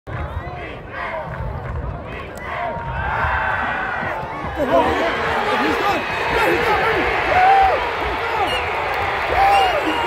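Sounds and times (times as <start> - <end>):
crowd shouting: 2.1 - 10.0.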